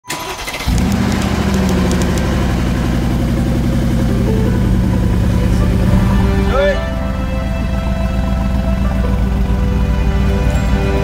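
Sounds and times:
car engine cranking: 0.0 - 11.0
car engine idling: 0.1 - 11.0.

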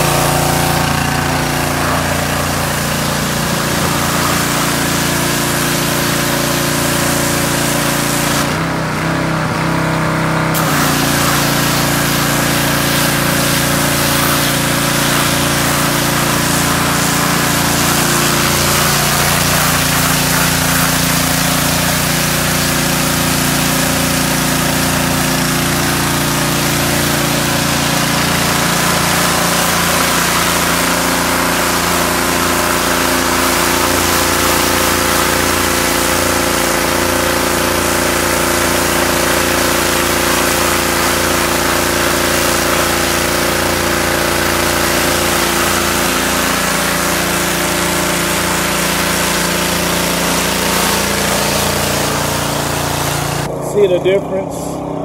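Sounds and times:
water jet hissing on wood: 0.0 - 8.6, 10.6 - 53.5
pressure washer engine droning: 0.0 - 55.0.

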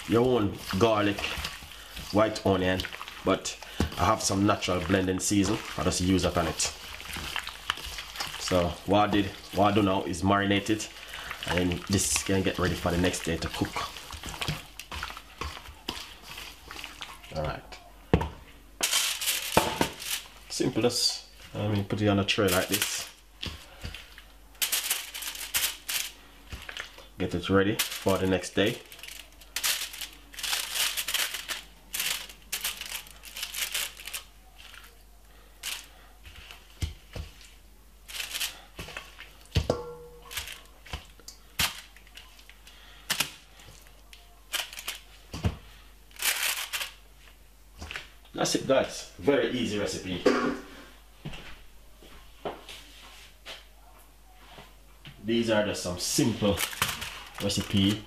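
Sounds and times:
aluminium foil crinkling: 0.0 - 17.9, 18.8 - 47.3, 56.0 - 58.0.

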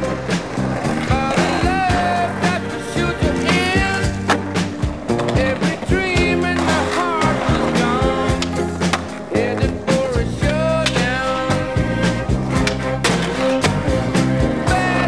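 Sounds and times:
skateboard trucks grinding: 0.0 - 15.0
song with singer and bass: 0.0 - 15.0.

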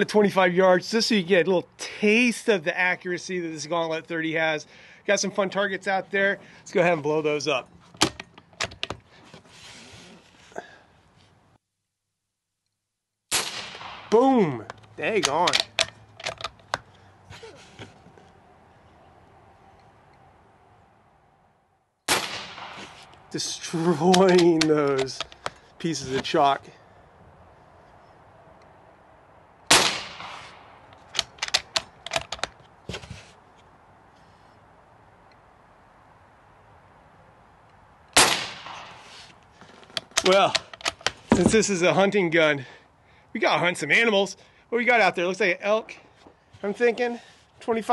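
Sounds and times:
faint outdoor background: 0.0 - 47.9
air rifle shot crack: 13.3 - 14.4, 22.1 - 23.2, 29.7 - 30.9, 38.2 - 39.2
rifle bolt metallic clicks: 14.7 - 16.9, 24.1 - 25.6, 29.9 - 32.6, 39.9 - 41.4.

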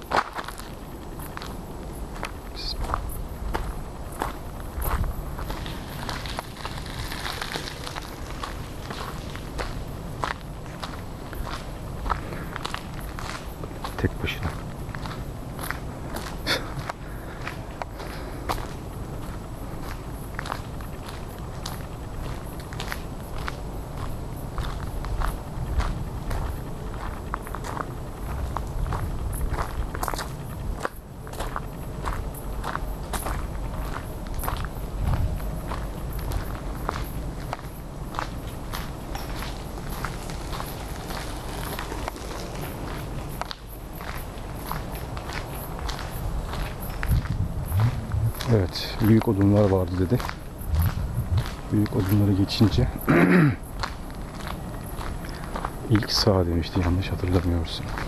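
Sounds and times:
footsteps crunching on dirt path: 0.0 - 58.0
low rumble: 46.2 - 49.2, 49.9 - 52.2.

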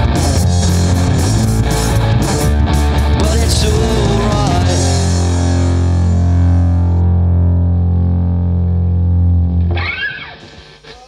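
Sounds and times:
distorted electric guitar chord ringing: 0.0 - 10.8.

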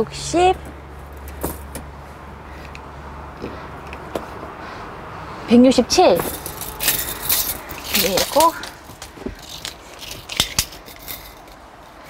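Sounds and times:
tape measure clicks and rattles: 6.2 - 12.0.

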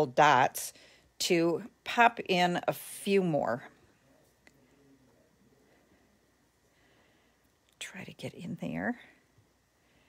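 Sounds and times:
woman speaking: 0.0 - 3.8, 7.8 - 9.2.

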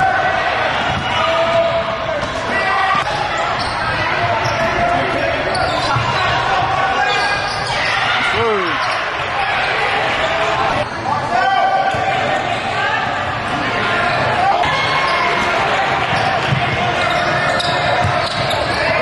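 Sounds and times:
voices in a large gym: 0.0 - 19.0
shoe squeal: 3.0 - 9.2, 14.0 - 19.0.

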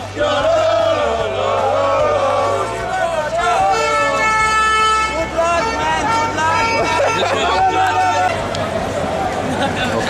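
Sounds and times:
street crowd voices: 0.0 - 10.0
horn held tone: 3.3 - 8.4.

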